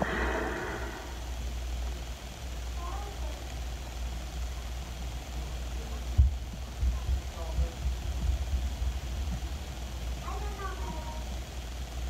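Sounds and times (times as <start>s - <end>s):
steady low rumble: 0.0s - 2.1s.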